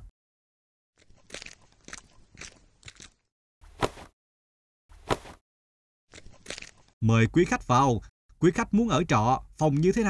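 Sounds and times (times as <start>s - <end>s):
cartoon footsteps: 1.0s - 4.2s, 4.9s - 5.4s.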